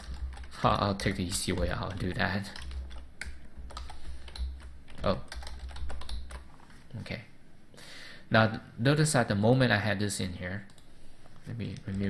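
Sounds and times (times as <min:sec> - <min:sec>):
computer keyboard keystrokes: 0:00.0 - 0:06.5.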